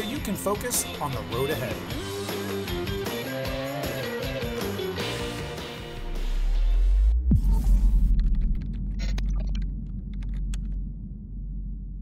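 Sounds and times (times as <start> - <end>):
deep rumble: 6.1 - 12.0
digital clicks and crackles: 8.1 - 10.8.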